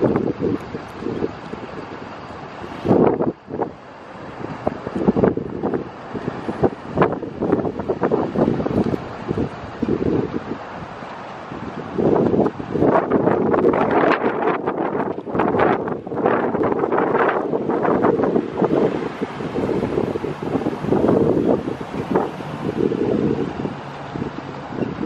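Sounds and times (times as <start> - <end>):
gusty wind buffeting microphone: 0.0 - 25.0.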